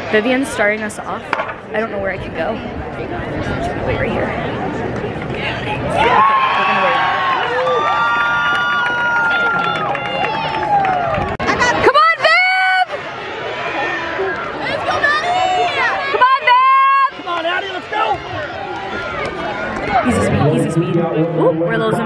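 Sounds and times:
crowd cheering and shouting: 5.1s - 22.0s.

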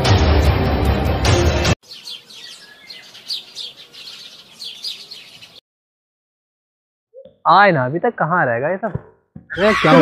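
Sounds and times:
birds chirping: 1.8s - 5.6s.

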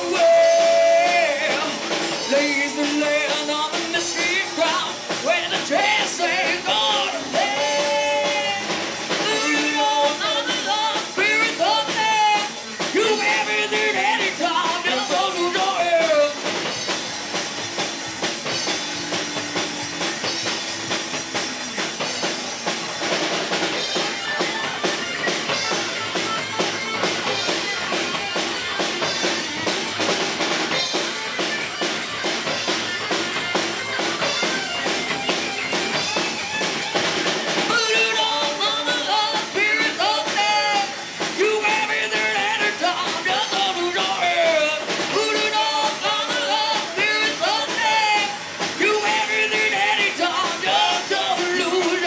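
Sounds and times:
person singing: 0.0s - 16.4s, 37.7s - 52.0s
fast busy drum kit: 0.0s - 52.0s
live rock band playing: 0.0s - 52.0s.

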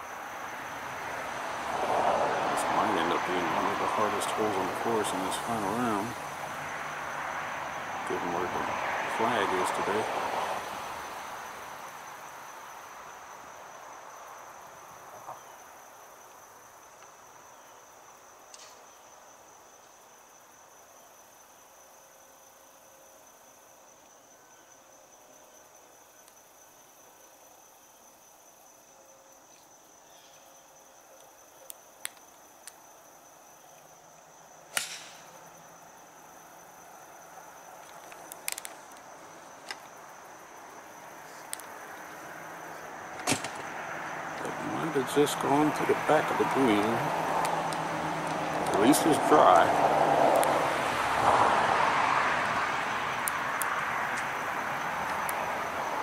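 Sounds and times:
insects buzzing: 0.0s - 56.0s
broad rushing noise: 42.4s - 56.0s.

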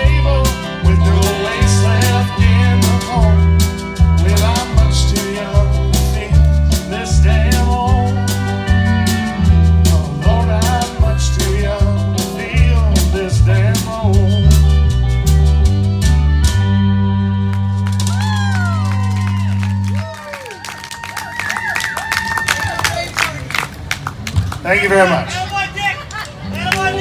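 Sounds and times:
person singing: 0.0s - 9.0s
accordion bass line: 0.0s - 20.2s
guitar: 0.0s - 21.3s, 26.0s - 27.0s
drums: 0.0s - 22.9s.

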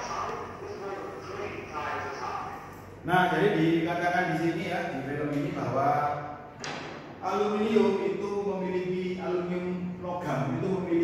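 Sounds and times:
narrator speaking over speakers: 0.0s - 6.2s.

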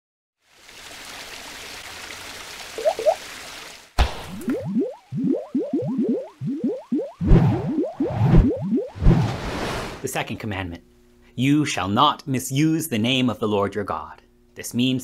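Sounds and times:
upward-sliding boing blips: 2.8s - 3.2s, 4.4s - 9.0s.

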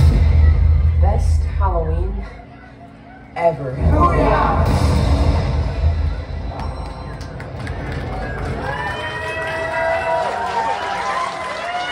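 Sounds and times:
crowd talking and calling out: 0.0s - 11.9s.

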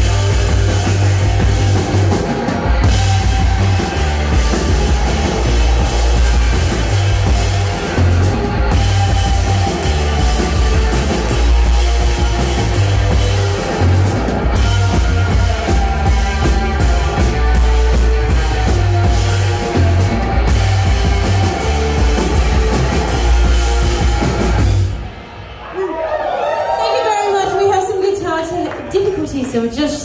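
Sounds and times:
drum kit: 0.0s - 25.6s
electric bass: 0.0s - 25.6s
electric guitar: 0.0s - 25.6s.

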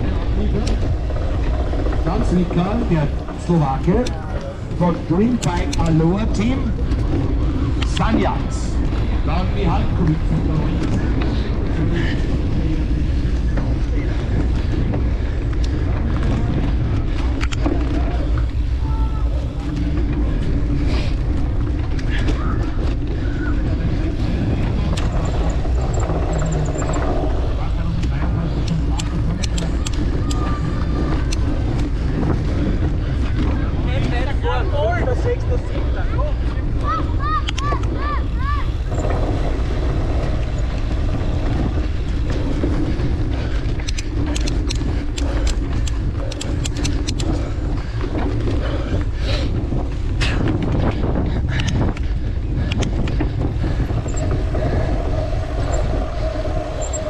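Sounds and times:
bike rattling and clicking: 0.0s - 57.0s
wind buffeting microphone: 0.0s - 57.0s.

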